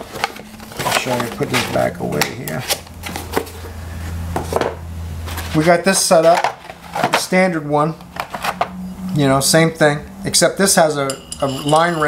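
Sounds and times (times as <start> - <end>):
cardboard box handling: 0.0 - 1.9
steady low hum: 0.0 - 12.0.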